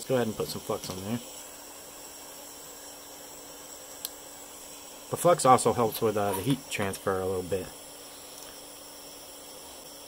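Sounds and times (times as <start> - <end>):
soldering iron hissing: 0.0 - 10.0.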